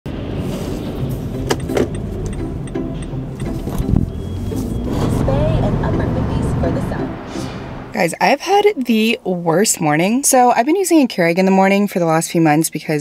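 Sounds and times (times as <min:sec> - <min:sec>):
road and engine rumble: 0:00.1 - 0:10.4.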